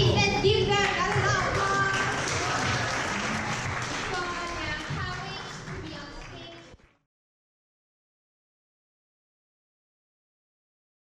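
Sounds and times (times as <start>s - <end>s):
audience applauding: 0.8s - 7.0s.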